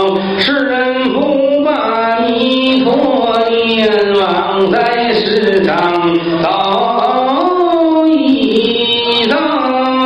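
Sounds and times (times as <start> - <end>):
man chanting in long notes: 0.0 - 10.0.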